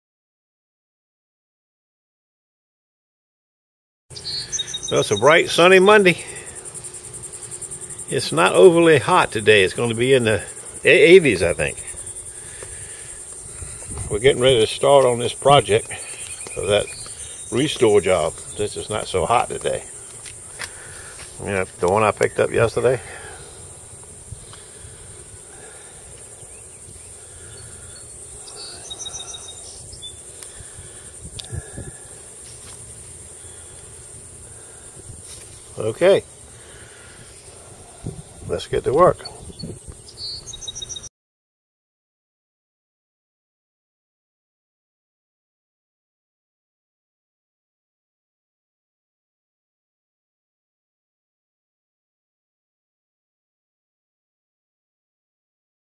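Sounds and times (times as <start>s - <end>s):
insects trilling: 4.1s - 41.1s.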